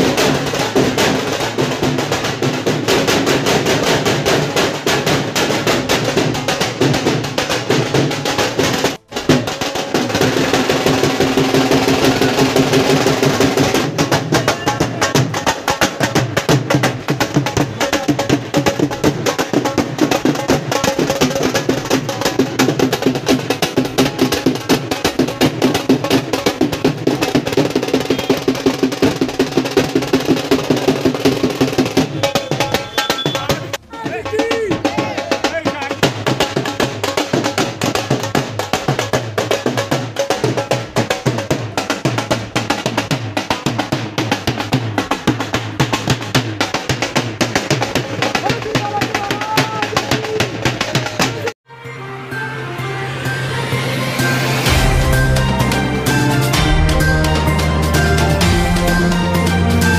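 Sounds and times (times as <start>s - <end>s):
drum beaten in fast rhythm: 0.0s - 51.6s, 54.5s - 59.9s.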